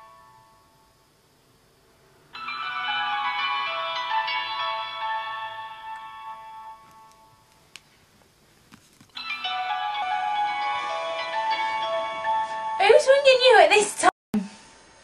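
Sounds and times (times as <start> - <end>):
mobile phone ringtone: 2.3 - 7.5, 9.2 - 13.0.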